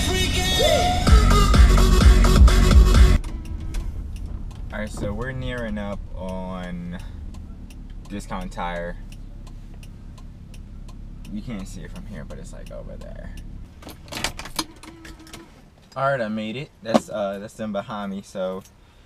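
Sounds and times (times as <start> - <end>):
hip-hop on car stereo: 0.0 - 15.7
car cabin sound: 2.3 - 18.8
faint ticks: 3.2 - 13.8.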